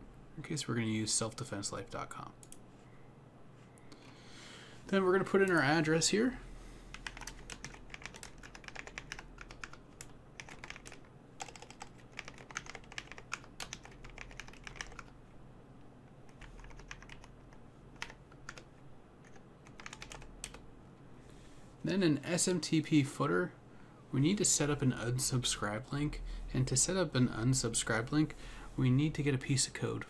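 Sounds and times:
keyboard typing: 6.9 - 15.1, 16.3 - 20.6.

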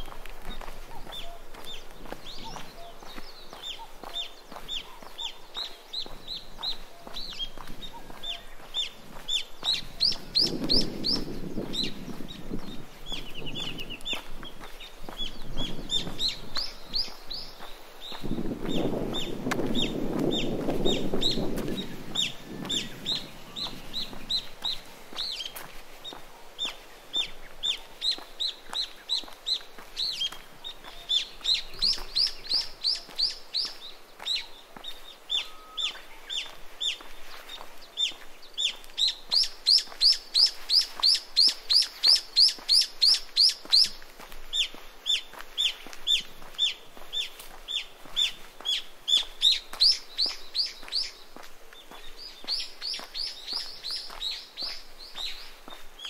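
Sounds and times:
bird calling high notes: 35.4 - 36.4.

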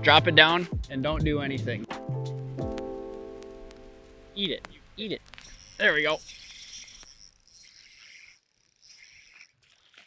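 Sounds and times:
fishing reel ticking and whirring: 5.4 - 10.0.

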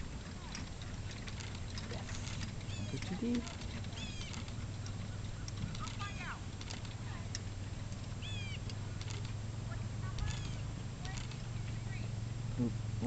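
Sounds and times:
steady low hum: 0.0 - 13.0
faint ticks: 0.4 - 9.4
bird chirping: 2.6 - 6.3, 8.0 - 9.3, 10.2 - 12.0.

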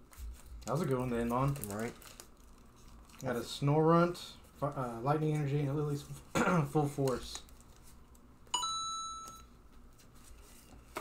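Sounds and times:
bright ding: 8.6 - 9.5.

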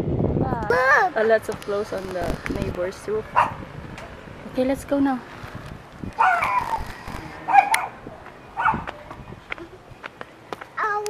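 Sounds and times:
dog barking: 3.4 - 3.6, 6.2 - 6.7, 7.5 - 8.0, 8.6 - 8.9.

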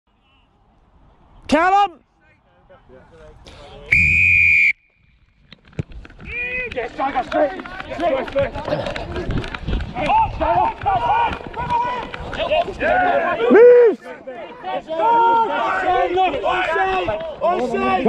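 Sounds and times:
referee's whistle blast: 3.9 - 4.9
voices shouting: 10.0 - 18.0.

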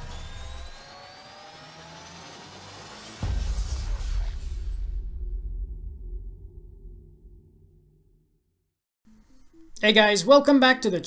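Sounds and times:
synthesized riser whoosh: 0.0 - 5.2
low rumble: 3.2 - 8.5.

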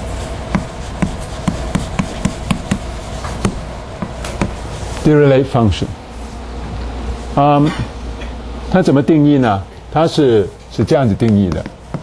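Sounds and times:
chalk tapping on blackboard: 0.5 - 4.6, 11.2 - 12.0.

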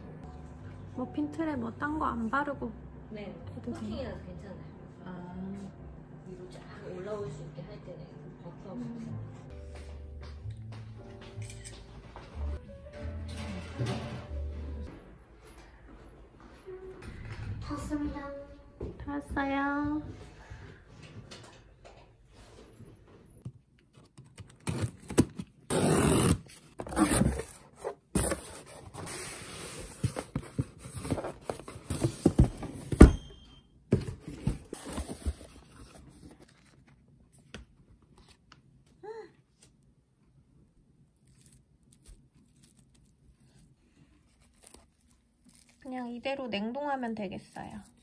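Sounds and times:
packaging tearing and crinkling: 44.3 - 45.9.

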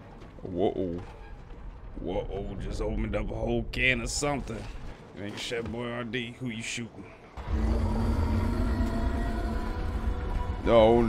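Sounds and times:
deep steady rumble: 1.0 - 5.0, 7.4 - 11.0
low drone: 7.2 - 11.0.

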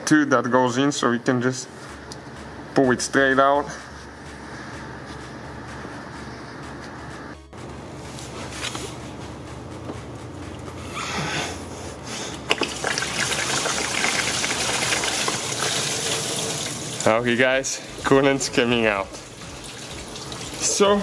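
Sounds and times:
coolant pouring from hose: 12.5 - 17.1, 19.0 - 21.0.

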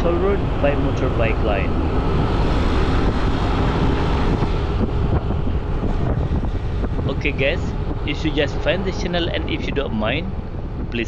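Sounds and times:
road noise: 0.0 - 11.0
wind buffeting microphone: 0.0 - 11.0.

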